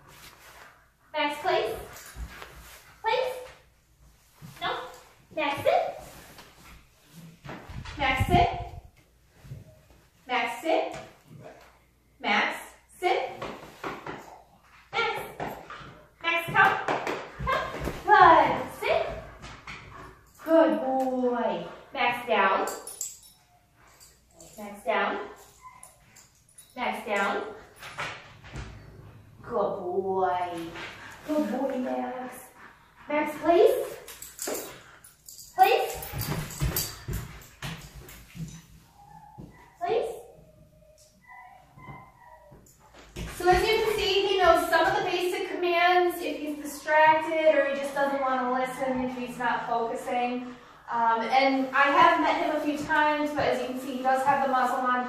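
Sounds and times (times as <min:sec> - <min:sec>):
woman talking: 0:01.1 - 0:01.9, 0:03.0 - 0:03.6, 0:04.6 - 0:06.0, 0:08.0 - 0:08.8, 0:10.3 - 0:11.0, 0:12.2 - 0:13.4, 0:14.9 - 0:15.5, 0:16.2 - 0:19.3, 0:20.4 - 0:22.8, 0:24.6 - 0:25.4, 0:26.8 - 0:27.6, 0:29.4 - 0:34.0, 0:35.5 - 0:36.2, 0:39.8 - 0:40.3, 0:43.3 - 0:55.0
dog paws thudding on wooden floor: 0:35.7 - 0:39.7, 0:41.8 - 0:45.5.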